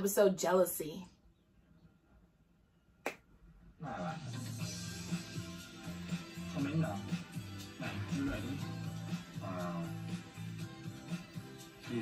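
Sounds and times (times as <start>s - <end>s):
music and voices: 3.8s - 12.0s.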